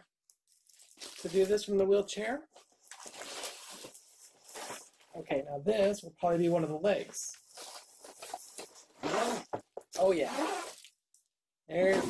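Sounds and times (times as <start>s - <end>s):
cardboard and plastic rustling: 0.5s - 1.8s, 2.5s - 6.0s, 6.9s - 9.8s.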